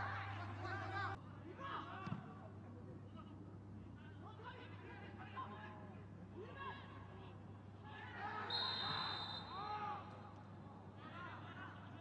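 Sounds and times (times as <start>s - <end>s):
referee's whistle: 8.5s - 9.6s.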